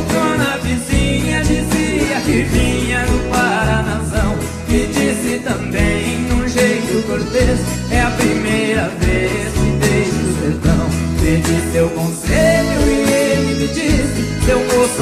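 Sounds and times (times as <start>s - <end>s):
country band playing: 0.0s - 15.0s.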